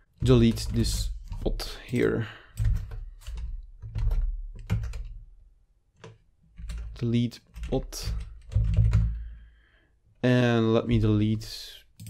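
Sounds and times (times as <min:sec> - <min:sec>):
computer keyboard keystrokes: 0:00.3 - 0:05.2, 0:06.0 - 0:07.0, 0:07.6 - 0:09.1.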